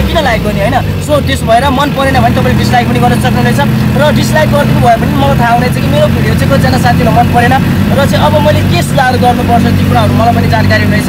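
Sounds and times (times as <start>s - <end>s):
man talking: 0.0s - 11.0s
vehicle engine running: 0.0s - 11.0s.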